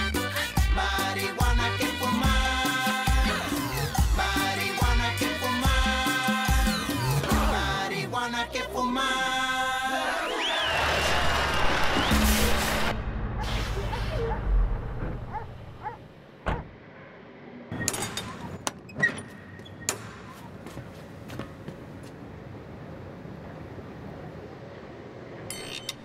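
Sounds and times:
party music: 0.0s - 10.6s.

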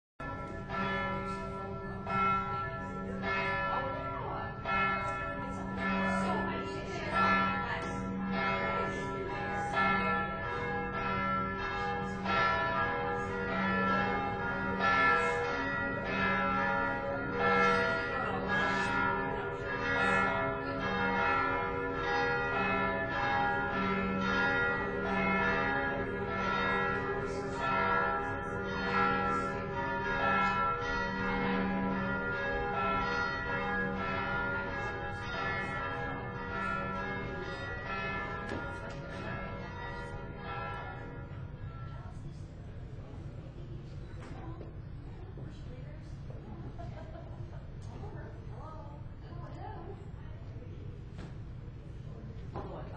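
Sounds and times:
church bells ringing: 0.2s - 49.9s.

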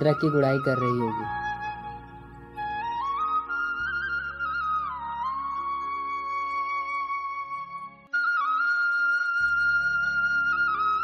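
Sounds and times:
low musical accompaniment: 0.0s - 11.0s.

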